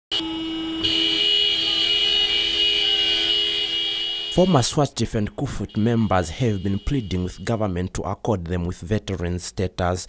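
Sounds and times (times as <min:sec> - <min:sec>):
vehicle horns blaring: 0:00.1 - 0:07.8.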